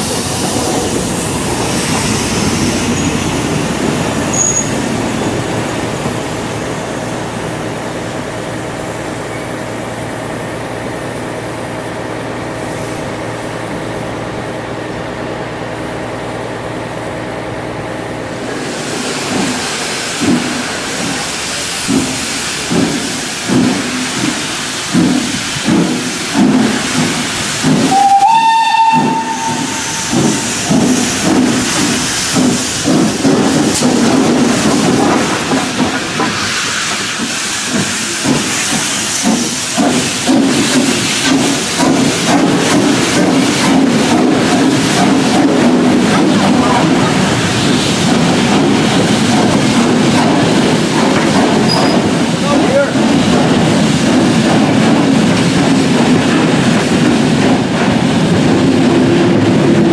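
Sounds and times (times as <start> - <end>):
steam hissing: 0.0 - 10.4, 18.4 - 59.9
steam locomotive exhaust beats: 0.0 - 59.9
steam whistle blast: 27.9 - 30.1.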